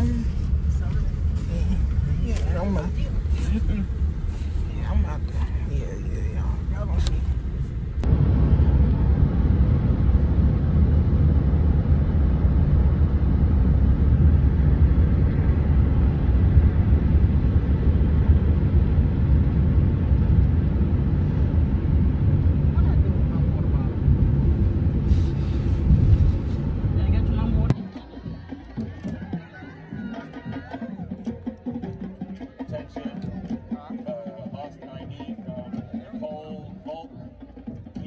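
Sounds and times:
wind and road noise in car: 0.0 - 27.8.

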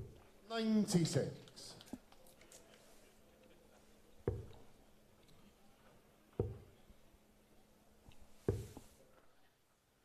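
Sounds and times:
dart thudding into dartboard: 8.5 - 8.8.

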